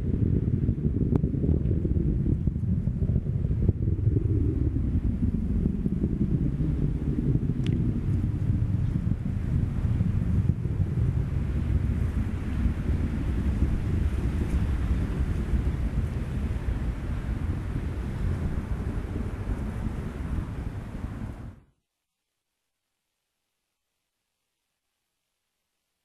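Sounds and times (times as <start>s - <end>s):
rocket engines rumbling: 0.0s - 21.6s
wind noise on microphone: 0.0s - 21.7s.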